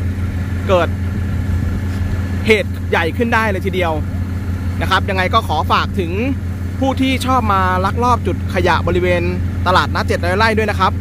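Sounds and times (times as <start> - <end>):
truck engine humming: 0.0 - 11.0.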